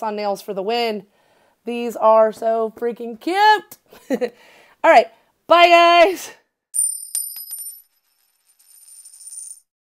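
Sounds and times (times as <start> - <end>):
metallic coin-like chime: 6.8 - 9.7.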